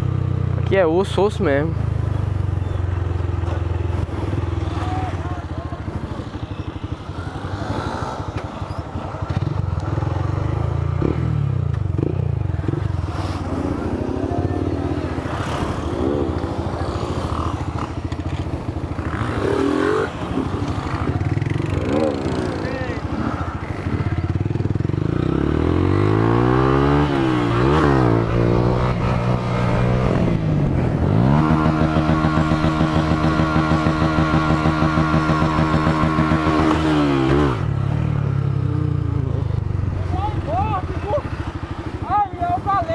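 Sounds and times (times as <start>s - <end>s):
motorcycle engine revving: 1.5s - 42.9s
other engines revving: 11.0s - 41.8s.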